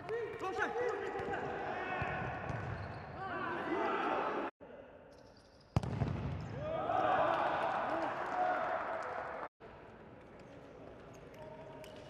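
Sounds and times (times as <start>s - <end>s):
shoes squeaking on court: 2.5s - 3.1s.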